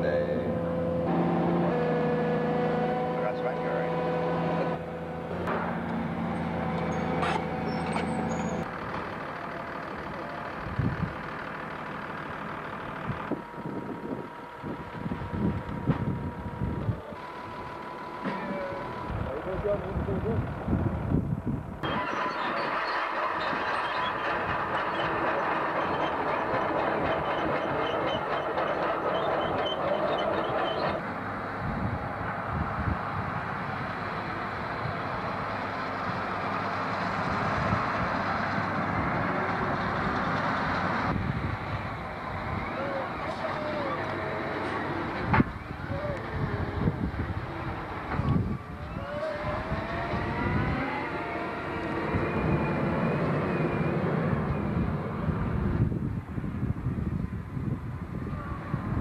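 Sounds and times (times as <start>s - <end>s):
diesel engines running: 0.0s - 59.0s
uneven rumbling with knocks: 21.8s - 31.1s, 43.2s - 45.7s.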